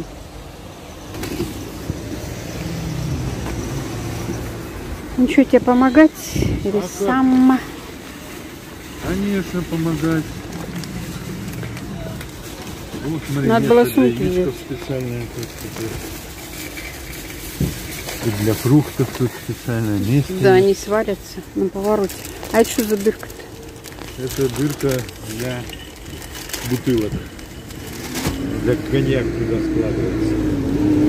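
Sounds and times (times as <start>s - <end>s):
car engine humming: 0.0s - 31.0s
outdoor background noise: 0.0s - 31.0s
person speaking: 18.2s - 23.5s.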